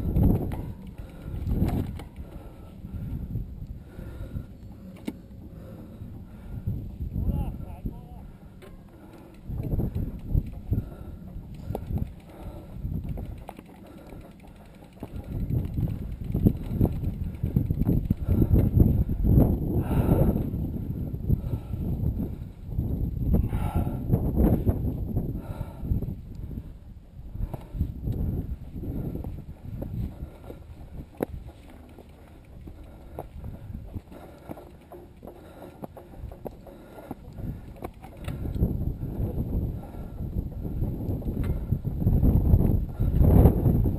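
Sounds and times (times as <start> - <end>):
bike knocking and rattling: 0.0 - 26.6, 27.3 - 43.9
wind rumble on microphone: 0.0 - 43.9
footsteps on stone steps: 28.6 - 41.5.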